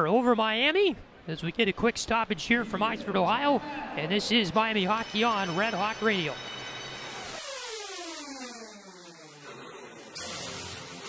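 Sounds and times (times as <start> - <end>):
electronic synth sweep: 5.1 - 11.0.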